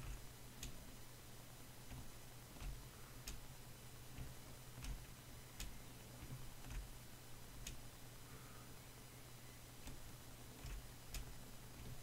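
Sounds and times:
computer mouse clicks: 0.0s - 0.8s, 1.9s - 3.5s, 4.1s - 6.9s, 7.6s - 7.8s, 9.8s - 12.0s
low steady hum: 0.0s - 12.0s.

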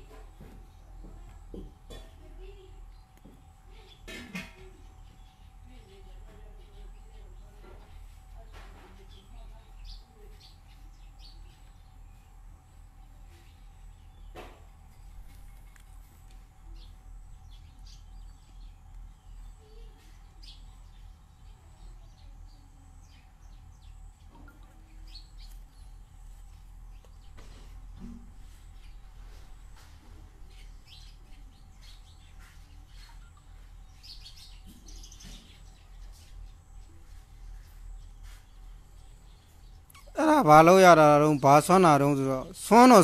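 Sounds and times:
birds chirping: 0.0s - 43.0s.

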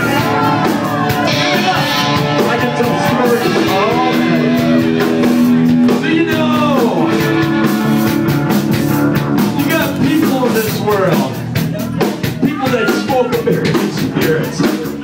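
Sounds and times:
person singing: 0.0s - 5.2s
electric guitar: 0.0s - 12.3s
drums: 0.0s - 15.0s.

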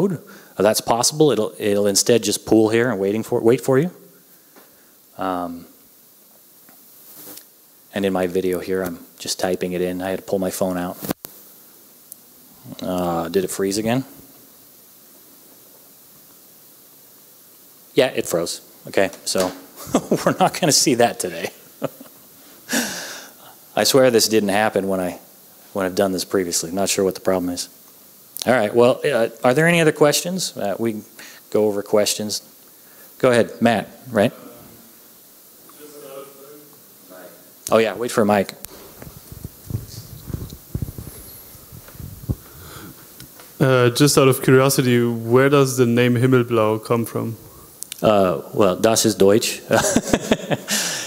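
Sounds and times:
faint steady hiss: 0.0s - 51.0s
microphone handling bumps: 38.7s - 43.6s.

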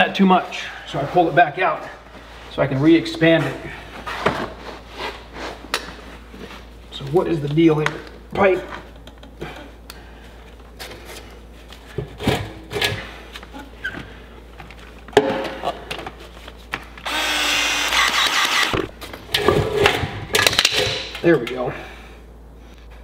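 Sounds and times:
powered expansion tool running: 17.0s - 18.9s.

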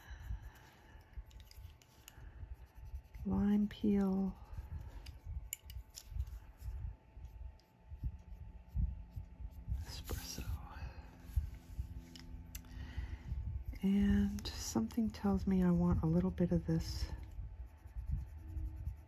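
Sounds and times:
colored pencil shading on paper: 2.3s - 4.8s, 15.2s - 19.0s.

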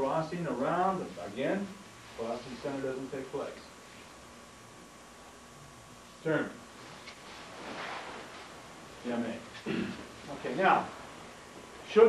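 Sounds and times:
rustling of uniforms: 6.7s - 12.0s
feet shuffling on floor: 6.8s - 11.8s.

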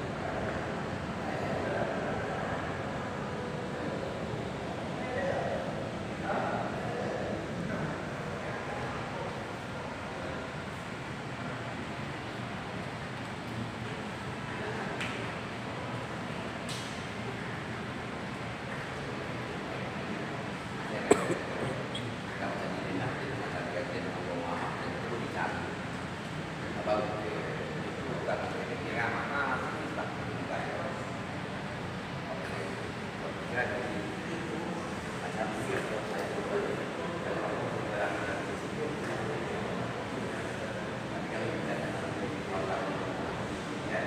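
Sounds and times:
faint voices murmuring: 0.0s - 44.0s
indoor background noise: 0.0s - 44.0s.

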